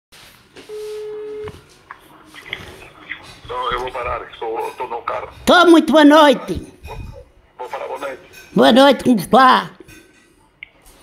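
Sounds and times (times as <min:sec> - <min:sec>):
telephone ringing tone beep: 0:00.7 - 0:01.6.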